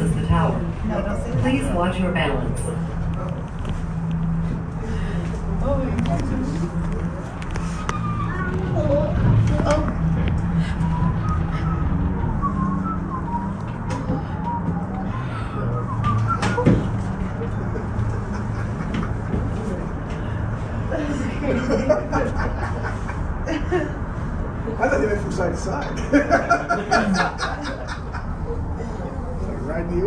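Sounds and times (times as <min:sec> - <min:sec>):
passengers' voices: 0:00.0 - 0:30.0
tram cabin hum: 0:00.0 - 0:30.0.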